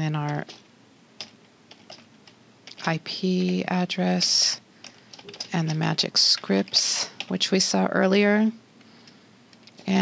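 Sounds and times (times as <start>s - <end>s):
computer keyboard keystrokes: 1.2s - 3.8s, 4.8s - 7.4s.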